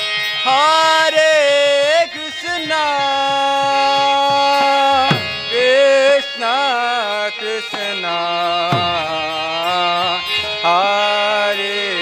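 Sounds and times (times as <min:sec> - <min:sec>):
harmonium held note: 0:00.0 - 0:12.0
hand drum strokes: 0:03.6 - 0:05.9.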